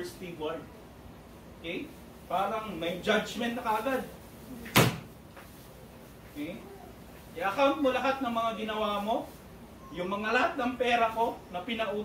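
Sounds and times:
sharp thump: 4.7 - 5.1.

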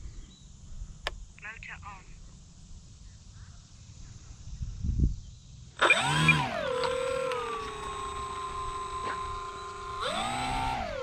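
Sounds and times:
voice from small loudspeaker: 1.4 - 2.2
wind rumble on microphone: 2.1 - 5.5.

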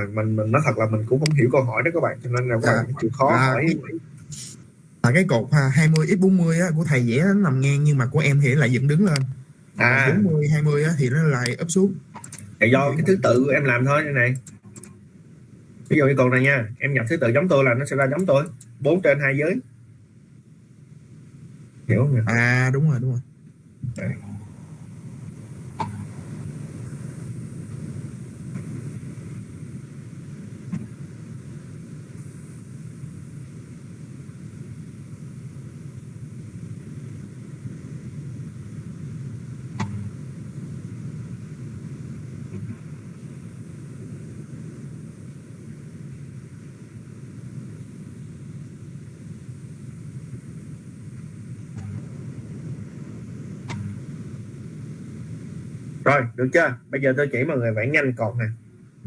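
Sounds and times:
low rumbling background noise: 0.0 - 59.0
faint short clicks: 12.2 - 12.5.

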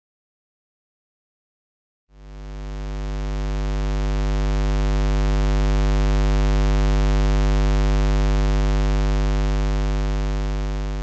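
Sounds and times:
low electrical buzz: 2.3 - 11.0.

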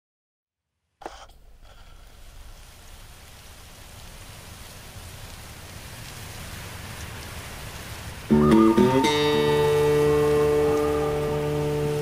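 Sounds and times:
steady hiss: 1.0 - 12.0.

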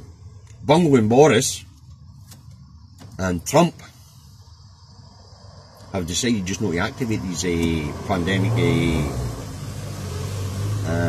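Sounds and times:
lorry engine humming: 1.6 - 11.0.

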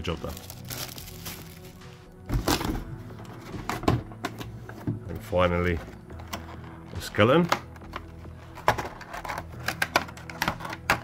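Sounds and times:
plastic packaging rustling: 0.0 - 2.8
background music: 0.0 - 11.0
parts handled in cardboard box: 7.4 - 11.0.

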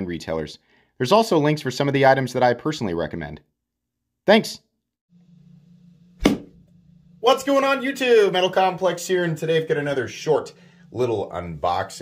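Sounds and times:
steady low hum: 5.2 - 12.0.

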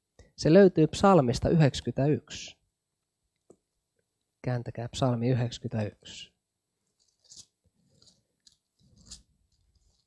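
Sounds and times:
thin pages rustling: 6.9 - 10.0.

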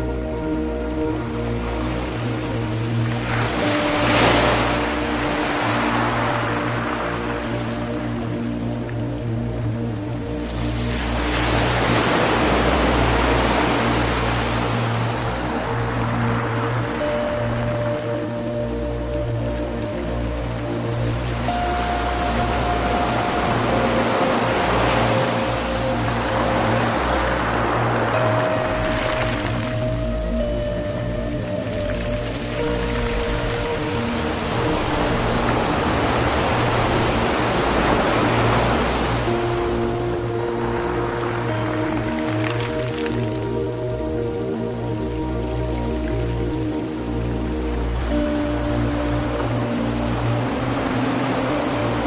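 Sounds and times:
low pulsing bass: 0.0 - 52.0
ocean surf: 0.0 - 52.0
slow ambient music: 0.0 - 52.0.

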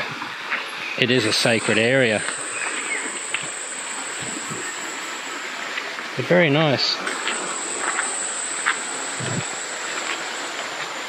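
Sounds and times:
creek water running over stones: 1.0 - 11.0
high-pitched insect drone: 1.0 - 11.0.

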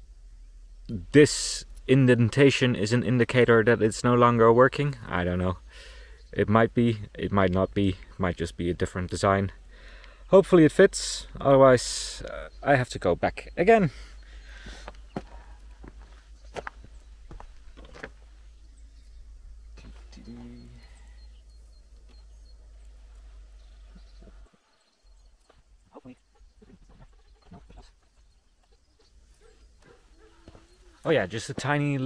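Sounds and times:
low steady rumble: 0.0 - 24.5
animal call: 19.8 - 24.8, 25.8 - 31.1.

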